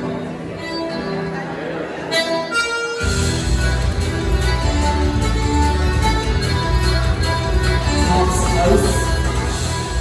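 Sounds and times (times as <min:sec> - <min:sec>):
live folk band music: 0:00.0 - 0:10.0.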